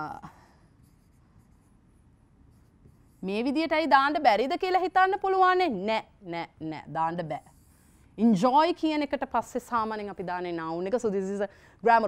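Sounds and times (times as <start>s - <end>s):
stylus scratching on screen: 0.0s - 5.7s, 6.8s - 10.9s.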